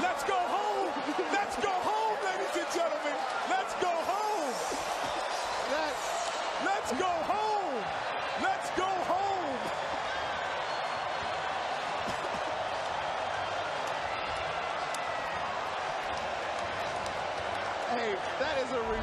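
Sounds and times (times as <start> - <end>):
arena crowd noise: 0.0 - 19.0
man's voice: 6.6 - 9.7.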